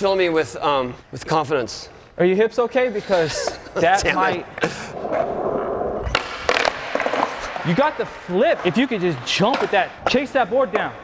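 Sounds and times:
skateboard wheels rolling on concrete: 0:04.3 - 0:11.0
skateboard clacking on floor: 0:06.0 - 0:07.6.

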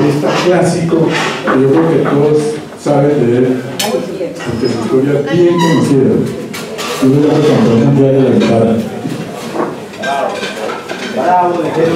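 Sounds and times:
amplified speech: 0:00.0 - 0:09.2
indistinct voices talking: 0:00.0 - 0:11.9.

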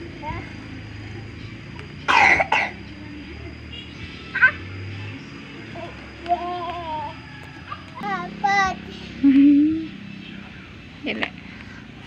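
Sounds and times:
harsh coughs: 0:02.1 - 0:02.8.

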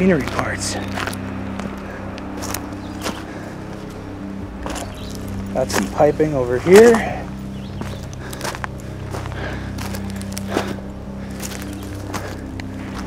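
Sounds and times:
footsteps crunching on gravel: 0:00.0 - 0:13.0
steady low hum: 0:00.0 - 0:13.0.

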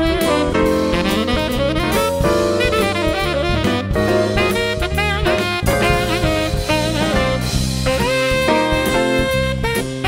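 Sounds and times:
drums: 0:00.0 - 0:10.0
electric bass: 0:00.0 - 0:10.0
saxophone jazz-blues solo: 0:00.0 - 0:10.0.

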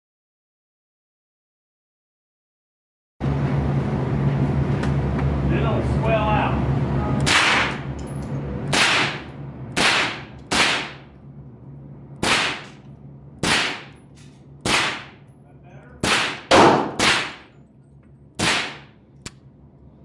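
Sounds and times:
sharp gunshots: 0:07.2 - 0:07.9, 0:08.7 - 0:11.1, 0:12.2 - 0:12.8, 0:13.4 - 0:14.0, 0:14.6 - 0:15.2, 0:16.0 - 0:17.5, 0:18.4 - 0:18.9.

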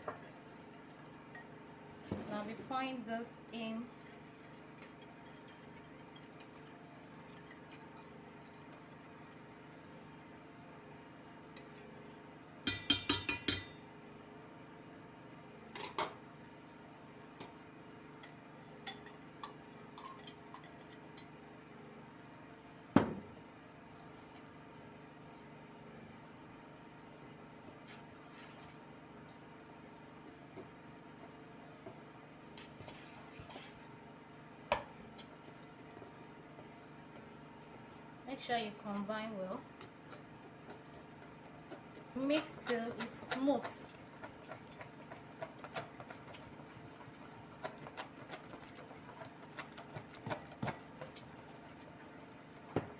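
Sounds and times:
whisk clinking in metal bowl: 0:03.9 - 0:11.8, 0:12.6 - 0:13.8, 0:18.2 - 0:21.3, 0:39.7 - 0:52.0.

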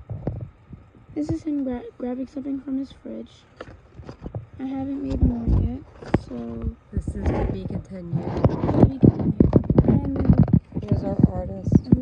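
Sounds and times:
rubbing: 0:03.6 - 0:12.0.

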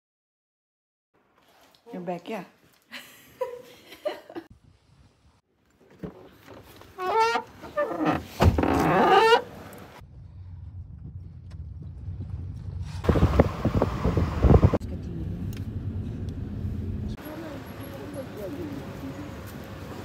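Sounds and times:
car engine and road rumble: 0:06.0 - 0:20.0.

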